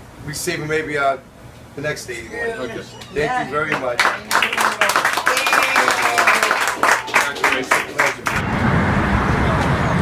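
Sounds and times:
street noise with low rumble: 0:00.0 - 0:10.0
hand claps of applause: 0:03.6 - 0:08.4.

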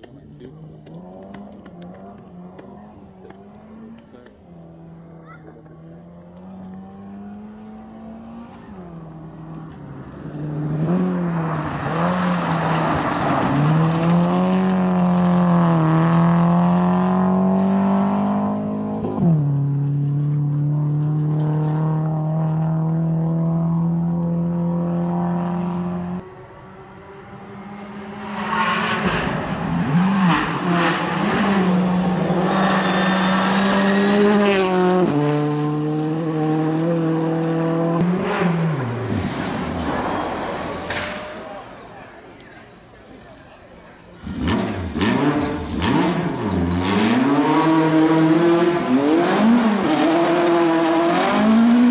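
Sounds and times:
tyres on gravel: 0:00.0 - 0:17.8, 0:38.7 - 0:46.7
rally car engine revving: 0:00.0 - 0:41.9, 0:44.2 - 0:51.9.

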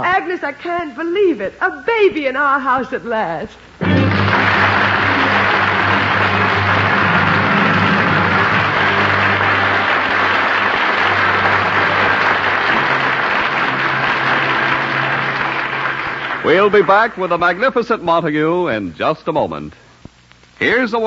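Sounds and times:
musical bridge: 0:03.8 - 0:17.3
studio audience applauding: 0:03.8 - 0:18.1.

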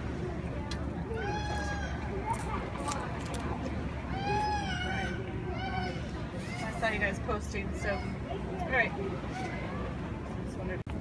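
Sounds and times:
steady low rumble: 0:00.0 - 0:11.0.

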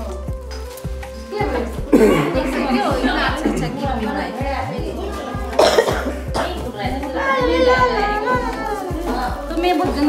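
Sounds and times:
background music: 0:00.0 - 0:10.0
people talking: 0:01.2 - 0:10.0.

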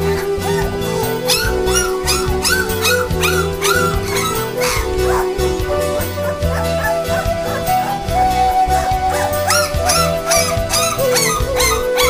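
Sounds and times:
background music: 0:00.0 - 0:12.0
puppies whimpering and yelping: 0:00.0 - 0:12.0.

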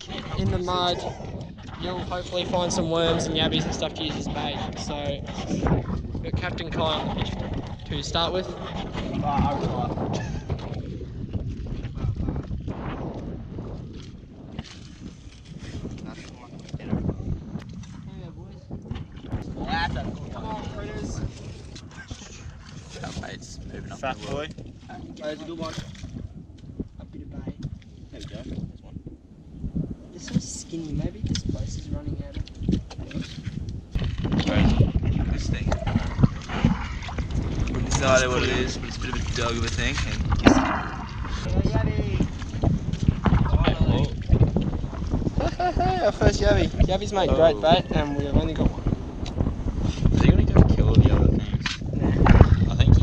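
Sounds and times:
wind buffeting microphone: 0:00.0 - 0:53.0.

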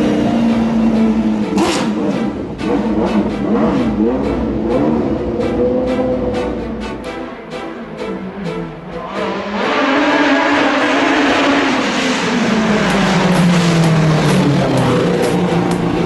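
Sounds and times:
race car engine at full throttle: 0:00.0 - 0:16.0.

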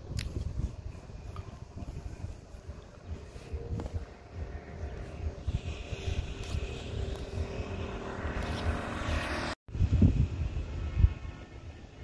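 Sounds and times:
wind buffeting microphone: 0:00.0 - 0:12.0
road traffic passing: 0:00.2 - 0:12.0.

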